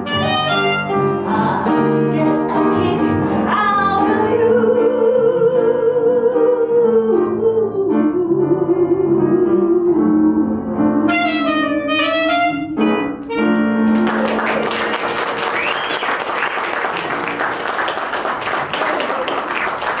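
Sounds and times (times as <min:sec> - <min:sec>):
jazz group playing: 0:00.0 - 0:03.7, 0:10.2 - 0:16.0
audience applauding: 0:13.8 - 0:20.0.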